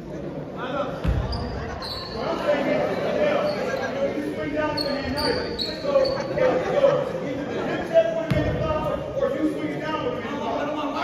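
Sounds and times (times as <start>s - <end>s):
voices echoing in hall: 0.0s - 11.0s
high squeaks: 1.4s - 2.4s, 4.6s - 6.4s.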